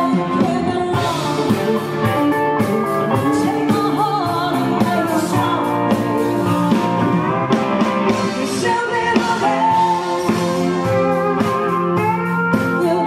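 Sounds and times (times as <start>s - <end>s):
country band playing: 0.0s - 13.0s.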